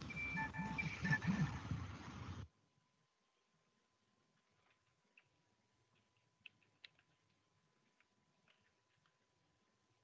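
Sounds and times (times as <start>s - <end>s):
faint steady high tone: 0.0s - 1.6s.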